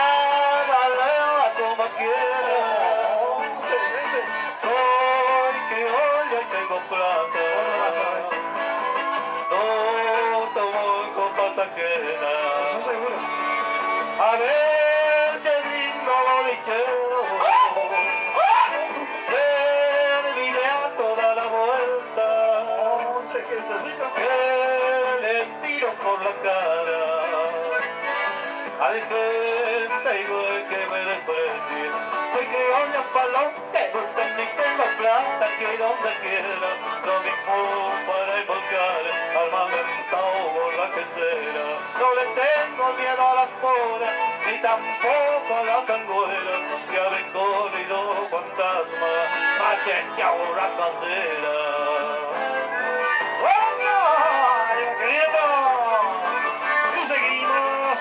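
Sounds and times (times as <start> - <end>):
live band dance music: 0.0 - 58.0.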